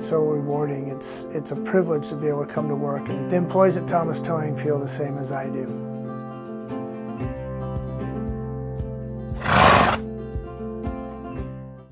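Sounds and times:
horse whinny: 9.4s - 10.0s.

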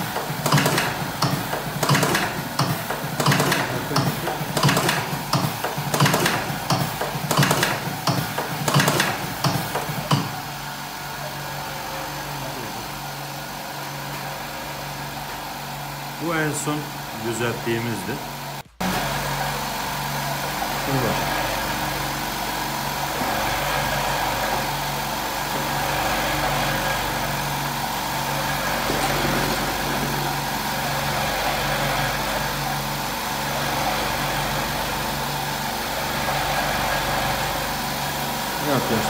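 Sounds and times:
cigarette-rolling machine running: 0.0s - 39.0s.

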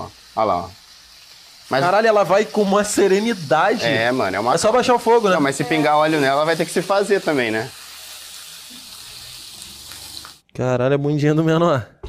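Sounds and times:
meat sizzling in oil: 0.0s - 10.4s.

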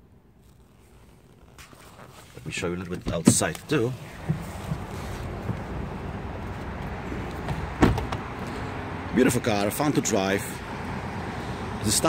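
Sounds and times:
car door shutting: 2.9s - 6.6s, 7.3s - 8.3s.

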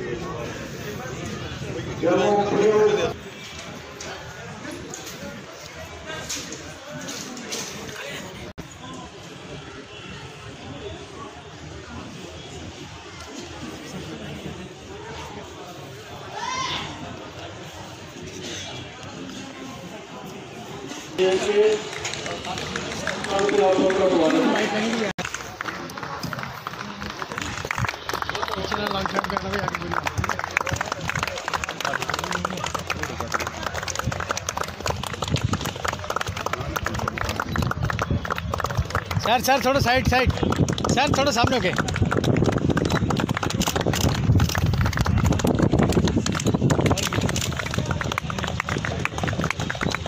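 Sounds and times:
people clapping: 21.2s - 50.0s
indistinct men's voices talking: 39.1s - 42.0s.

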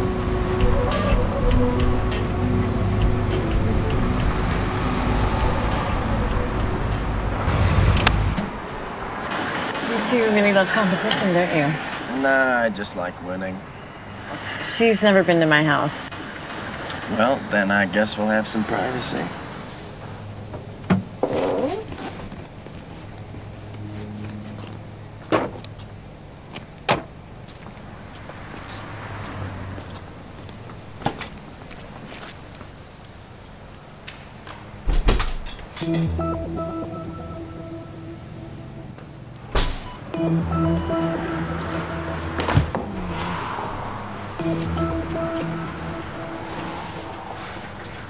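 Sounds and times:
car engine and road noise: 0.0s - 48.0s
low steady hum: 35.8s - 48.0s
car door slamming: 39.5s - 39.9s.

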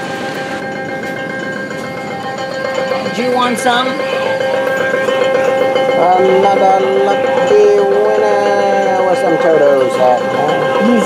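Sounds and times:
arcade machine noise: 0.0s - 11.0s
held electronic tone: 0.0s - 11.0s.

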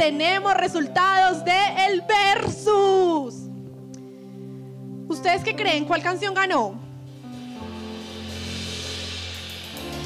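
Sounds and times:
live band keyboard chords: 7.0s - 10.0s
low bass: 7.7s - 10.0s.

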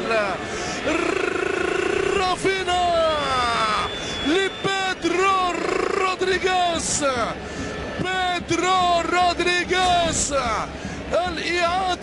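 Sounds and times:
man shouting excited cries: 0.8s - 4.4s.

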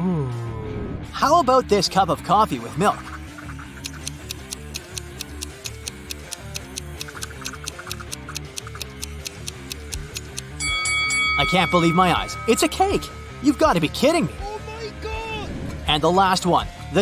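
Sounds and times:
light background music: 0.0s - 17.0s
countdown timer ticking: 2.8s - 15.0s
bell-like chime: 10.6s - 14.8s.

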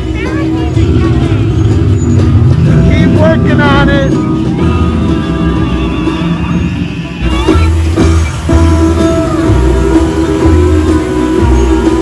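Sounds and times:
faint music: 0.0s - 12.0s
loud low rumble: 0.0s - 12.0s.

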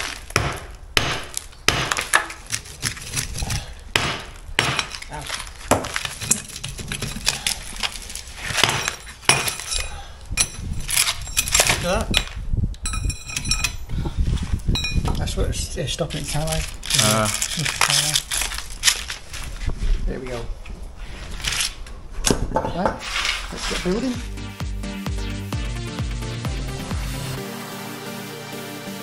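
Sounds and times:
hammer striking chisel into brick: 0.0s - 2.3s, 3.9s - 5.0s
rubble clinking: 1.2s - 13.9s, 14.7s - 15.4s
ringing metallic clinking: 8.8s - 13.9s, 14.8s - 15.1s.

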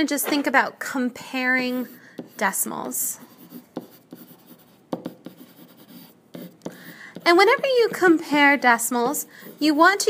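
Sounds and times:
pen scratching on paper: 1.6s - 10.0s.

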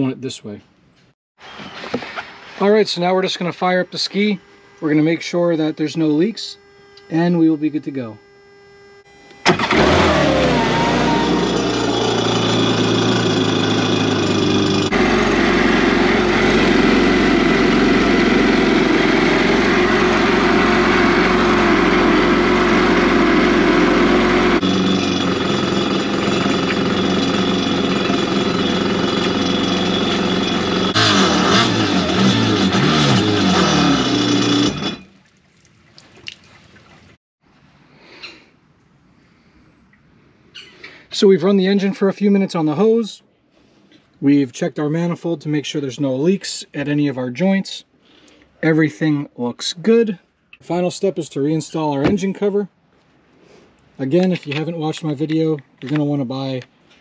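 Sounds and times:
jet ski engine running: 9.1s - 35.0s.

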